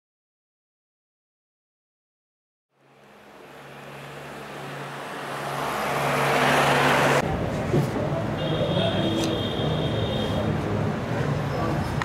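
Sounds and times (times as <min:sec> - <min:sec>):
rushing noise: 0:02.8 - 0:07.7.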